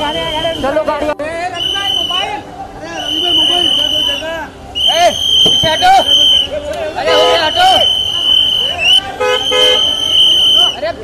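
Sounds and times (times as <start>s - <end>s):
crowd voices: 0.0s - 11.0s
car horn tooting: 4.8s - 10.7s.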